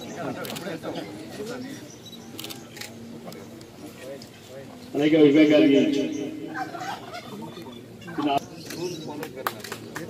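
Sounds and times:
crowd talking: 0:00.0 - 0:10.0
camera shutter clicks: 0:00.4 - 0:00.7, 0:02.3 - 0:03.0.

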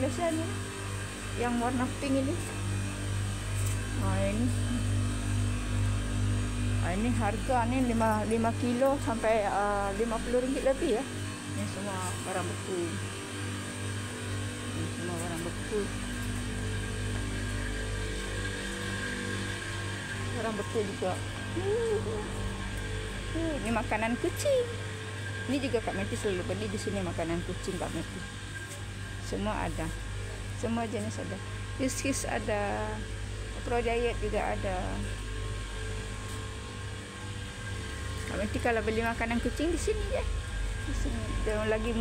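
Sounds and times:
refrigeration hum: 0:00.0 - 0:42.0.

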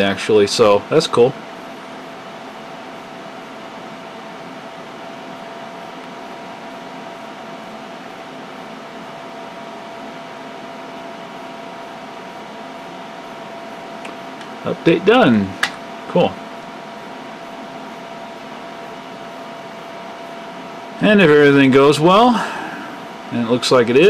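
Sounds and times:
computer cooling fans whirring: 0:00.0 - 0:24.0.

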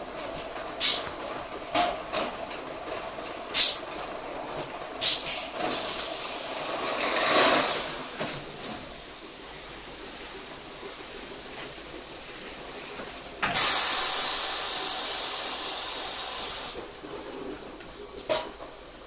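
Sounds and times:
compressed air hisses: 0:00.8 - 0:01.0, 0:13.5 - 0:16.9.

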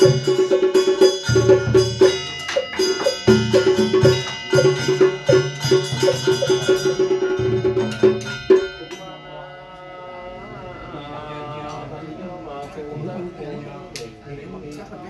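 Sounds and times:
bells ringing: 0:00.0 - 0:13.8.

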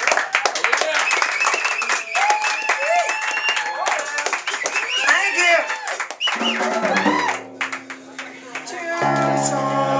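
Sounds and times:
electric guitars sustained notes: 0:07.1 - 0:09.9.

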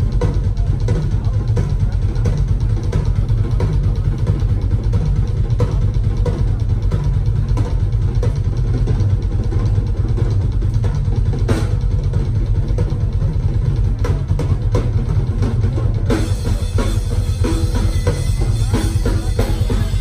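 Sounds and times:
drum kit solo: 0:00.0 - 0:20.0.

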